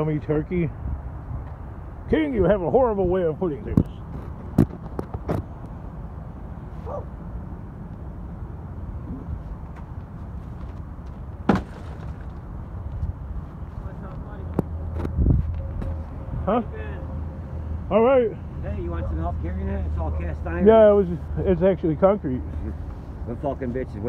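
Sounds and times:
heavy thump: 11.4s - 12.3s
sharp knocks: 11.4s - 12.3s.

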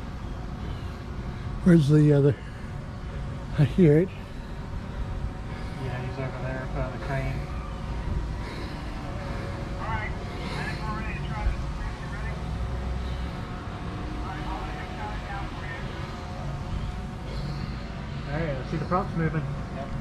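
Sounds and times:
steady low rumble: 0.0s - 20.0s
distant people talking: 0.5s - 20.0s.

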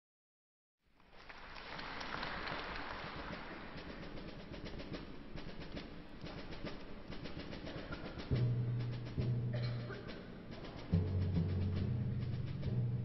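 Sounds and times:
audience applause: 1.0s - 4.1s.

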